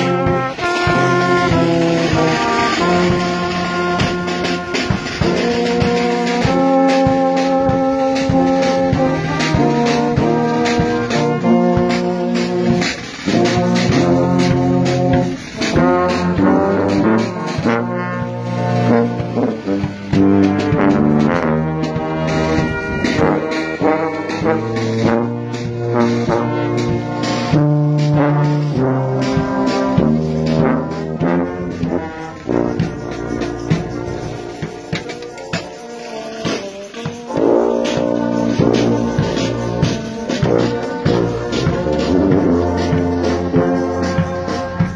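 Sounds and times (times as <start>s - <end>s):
marching brass band playing: 0.0s - 44.9s.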